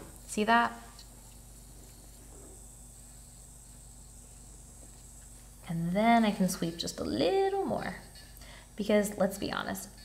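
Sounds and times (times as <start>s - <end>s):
electric nail file whine: 0.0s - 10.0s.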